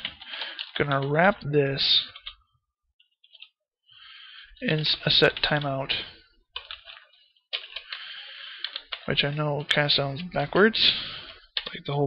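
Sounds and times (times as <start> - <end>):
computer keyboard typing: 0.0 - 1.3, 2.0 - 2.4, 3.0 - 3.6, 4.7 - 5.8, 6.6 - 11.8.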